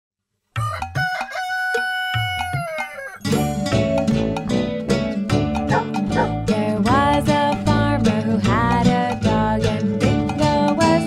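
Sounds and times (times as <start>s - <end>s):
rooster crowing: 0.6s - 3.3s
plucked-string music: 3.2s - 11.0s.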